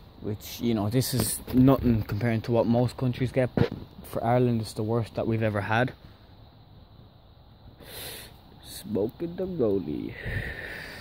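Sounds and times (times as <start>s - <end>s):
faint background hiss: 0.0s - 11.0s
short sharp breath: 7.8s - 8.4s.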